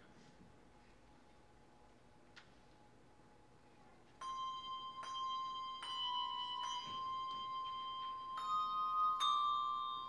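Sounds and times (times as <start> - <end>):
handbell notes ringing: 4.2 - 10.0.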